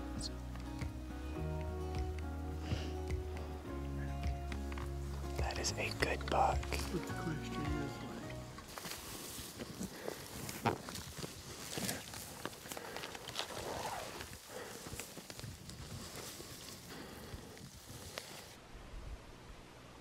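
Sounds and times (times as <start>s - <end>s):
footsteps through dry grass: 4.5s - 18.6s
clothing rustling: 8.6s - 17.1s.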